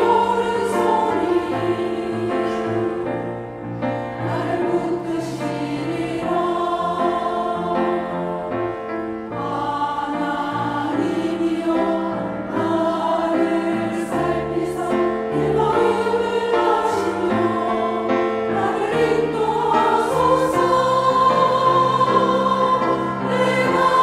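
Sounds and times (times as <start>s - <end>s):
women's choir singing: 0.0s - 24.0s.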